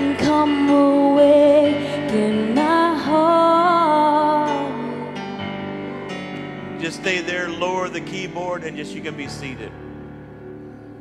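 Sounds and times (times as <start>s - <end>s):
keyboard playing soft chords: 0.0s - 11.0s
man speaking: 6.8s - 9.8s.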